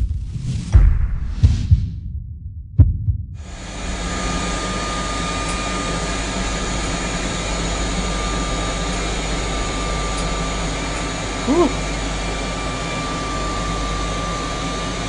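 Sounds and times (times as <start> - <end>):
faint steady whine: 3.4 - 15.0
rushing of cold air blower: 3.4 - 15.0.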